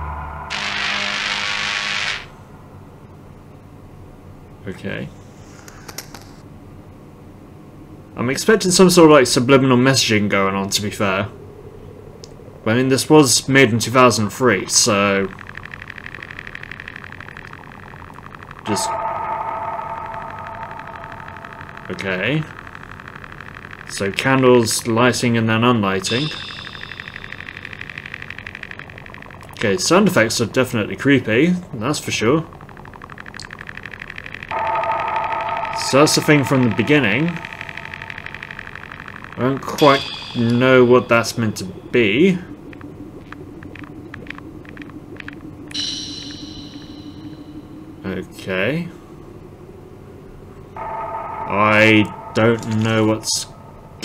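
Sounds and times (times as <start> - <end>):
high fluttering tones: 0.0 - 3.0, 9.9 - 54.0
low eerie drone: 0.0 - 5.4, 6.6 - 54.0
crackling clicks: 5.6 - 6.4, 12.1 - 12.4, 13.8 - 47.7.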